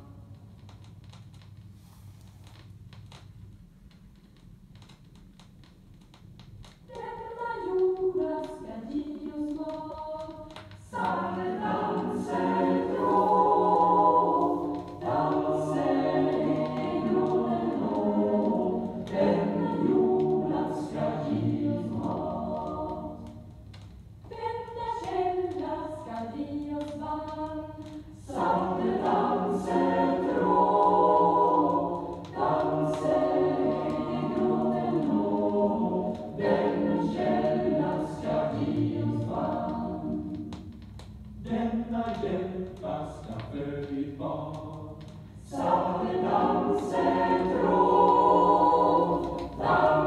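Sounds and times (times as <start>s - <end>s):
record surface noise with clicks: 0.0s - 50.0s
choir singing: 6.9s - 23.5s, 24.3s - 40.8s, 41.4s - 50.0s.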